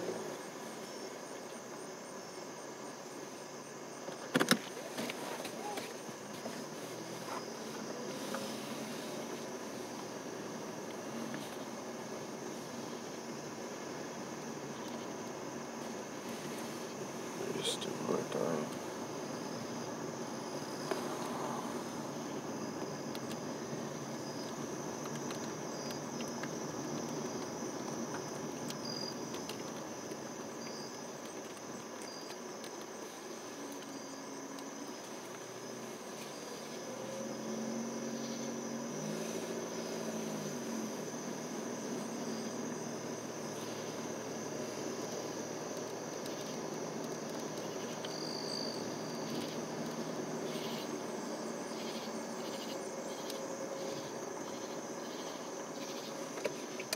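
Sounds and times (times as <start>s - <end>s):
car road and engine noise: 0.0s - 56.9s
crickets and insects chirping: 0.0s - 56.9s.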